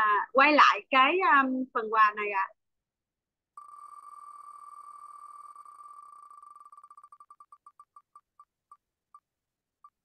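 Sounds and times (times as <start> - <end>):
prize wheel electronic ticks: 3.6 - 8.5.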